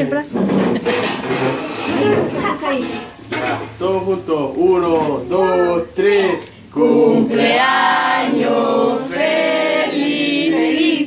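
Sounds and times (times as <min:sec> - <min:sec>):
tableware clinking: 0:00.4 - 0:03.8
people talking: 0:01.9 - 0:06.4.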